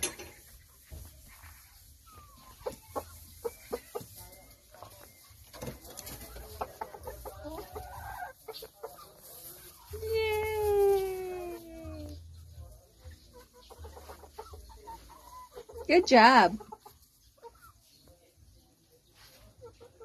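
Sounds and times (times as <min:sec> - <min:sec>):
chickens clucking: 0:00.0 - 0:20.0.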